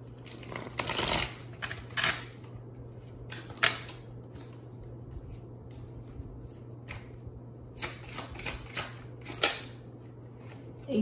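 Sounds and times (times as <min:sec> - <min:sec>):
cards being shuffled: 0:00.2 - 0:07.1.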